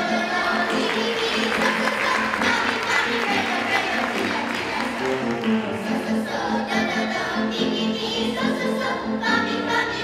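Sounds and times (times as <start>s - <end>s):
choir of young voices singing: 0.0s - 10.0s.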